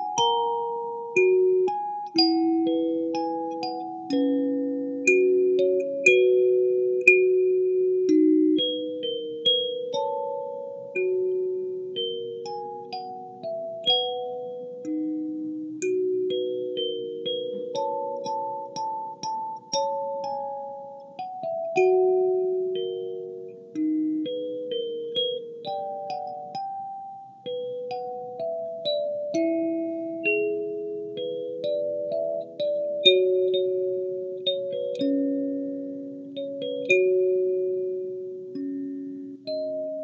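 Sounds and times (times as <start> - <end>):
kalimba melody: 0.0 - 40.0.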